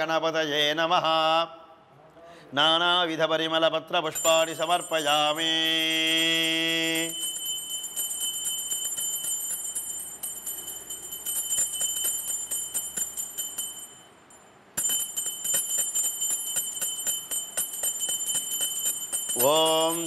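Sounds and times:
brass hand bell ringing rapidly: 4.2s - 20.0s.

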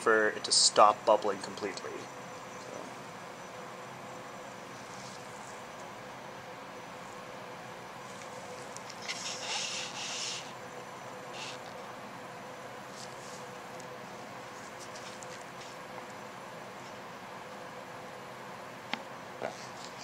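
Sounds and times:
room hum: 0.0s - 20.0s
hissing rustle: 8.0s - 12.0s.

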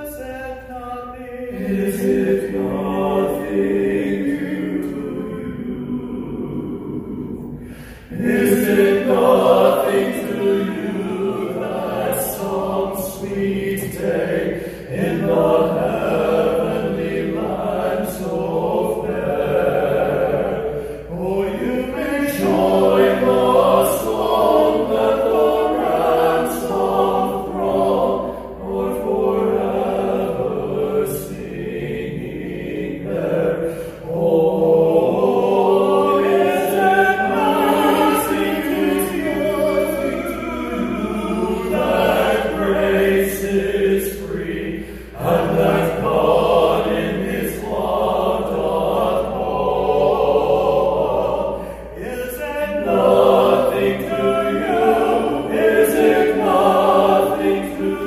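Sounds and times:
men singing in harmony: 0.0s - 58.0s.

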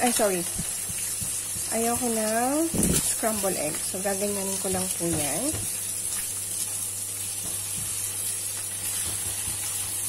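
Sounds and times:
egg sizzling in oil: 0.0s - 10.0s.

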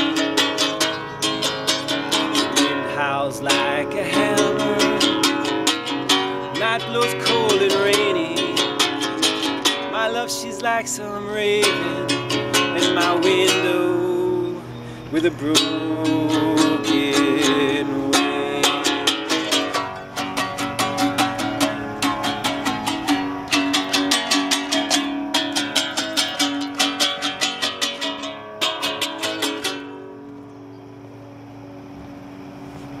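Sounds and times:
mandolin strummed and picked: 0.0s - 30.5s.

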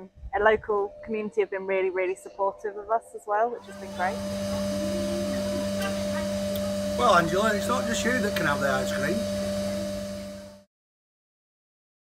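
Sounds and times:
steady machine hum: 3.6s - 10.7s.

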